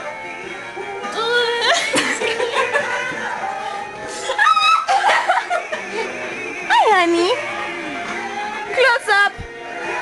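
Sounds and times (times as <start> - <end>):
film music from television: 0.0 - 10.0
girls laughing and squealing: 4.1 - 6.0.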